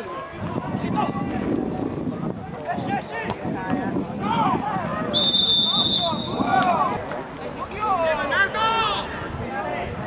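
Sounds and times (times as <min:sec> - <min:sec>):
referee's whistle blast: 0:05.1 - 0:06.5.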